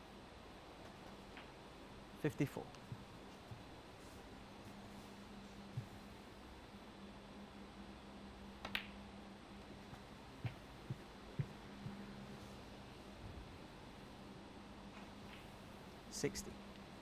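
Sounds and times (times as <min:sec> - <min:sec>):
low room hum: 0:00.0 - 0:17.0
soft low thuds: 0:05.7 - 0:06.1, 0:09.9 - 0:12.4.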